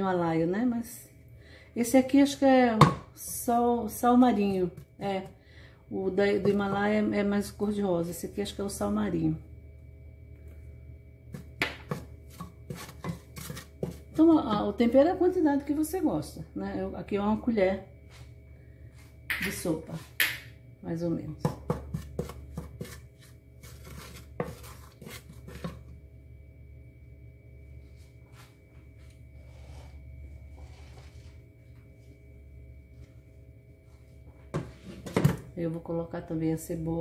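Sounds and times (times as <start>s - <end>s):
steady low hum: 0.0s - 37.0s
wooden spoon scraping metal pot: 11.4s - 14.7s, 21.6s - 25.9s, 29.4s - 31.4s.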